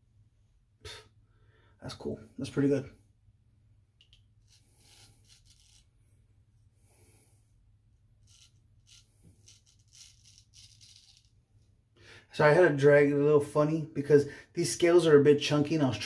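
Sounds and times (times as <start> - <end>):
razor scraping stubble: 4.4 - 5.9, 8.2 - 11.3.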